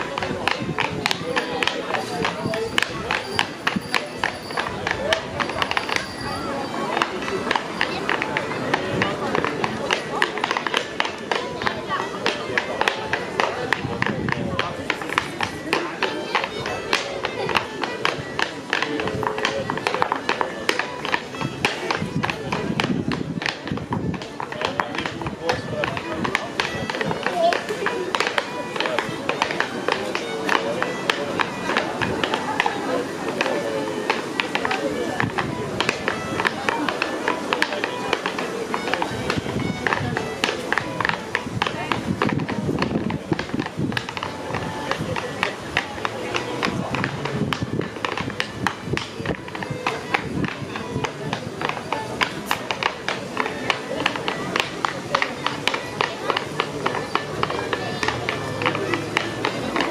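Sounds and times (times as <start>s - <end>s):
faint fiddle: 0.0s - 59.9s
clogs tapping on wooden floor: 7.0s - 32.8s, 33.4s - 59.9s.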